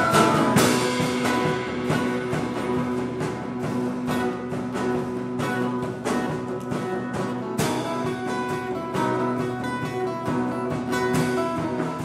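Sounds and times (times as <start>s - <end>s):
steady drum beat: 0.0s - 12.0s
strummed acoustic guitar: 0.0s - 12.0s.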